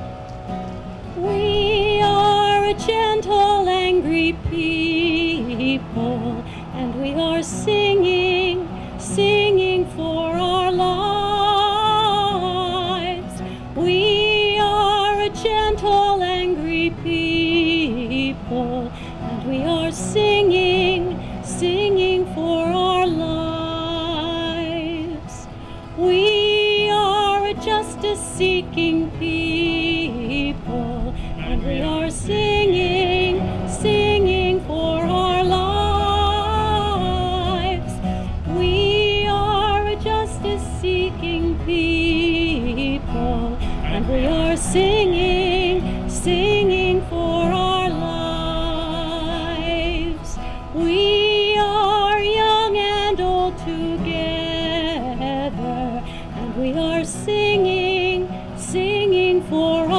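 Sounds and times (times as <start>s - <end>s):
strummed acoustic guitar: 0.0s - 59.9s
woman singing with vibrato: 1.0s - 59.9s.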